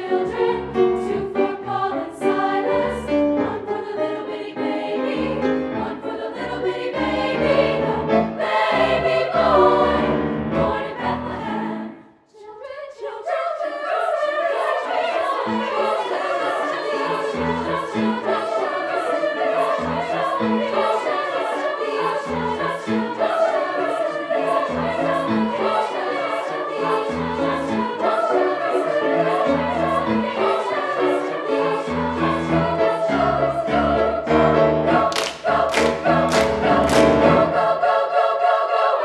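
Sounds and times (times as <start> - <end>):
choir singing gospel: 0.0 - 39.0.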